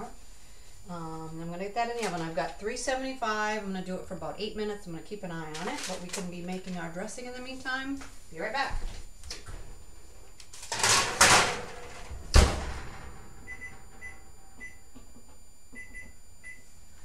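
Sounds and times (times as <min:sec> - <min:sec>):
oven door shutting with a thud: 0:10.8 - 0:14.3.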